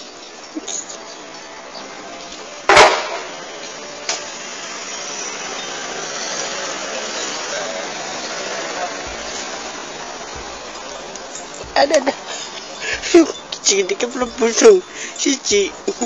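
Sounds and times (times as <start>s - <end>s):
steady low noise: 0.0s - 16.0s.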